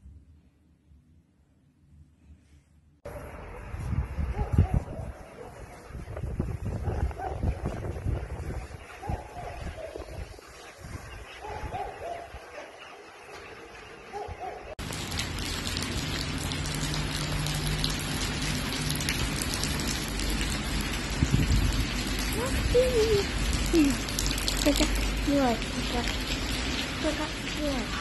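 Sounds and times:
wind rumbling on microphone: 3.2s - 12.6s, 14.3s - 28.0s
rain on wet pavement: 14.8s - 28.0s.

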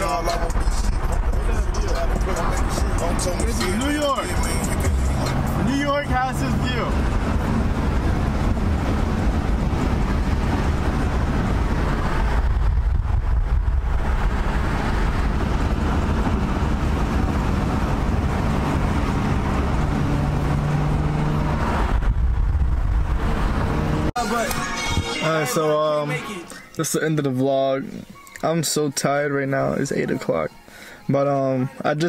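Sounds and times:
car engine drone: 0.0s - 28.1s
road and tyre rumble: 0.0s - 28.5s.

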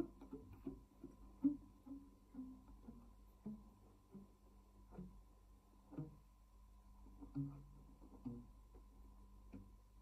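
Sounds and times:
classical guitar plucked notes: 0.0s - 5.2s, 7.1s - 8.8s.

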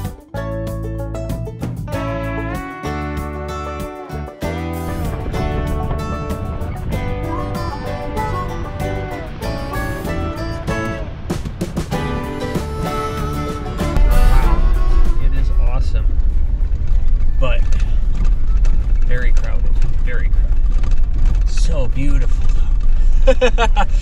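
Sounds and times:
background music: 0.0s - 16.3s
low rumble of engine and tyres: 4.4s - 24.0s.

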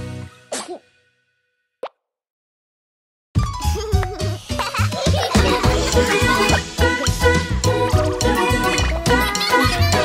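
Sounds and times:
cartoon girl sobbing: 8.6s - 10.0s.

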